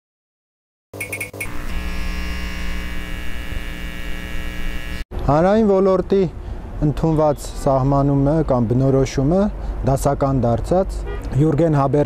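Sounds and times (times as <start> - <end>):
quick high electronic blips: 1.0 - 3.4
buzzing electronic drone: 1.0 - 5.1.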